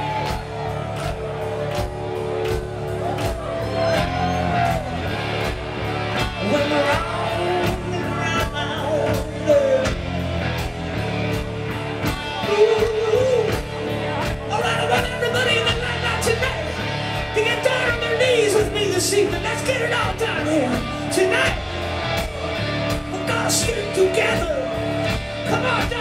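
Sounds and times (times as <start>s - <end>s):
live rock band playing: 0.0s - 26.0s
person singing: 6.2s - 10.0s, 12.2s - 13.7s.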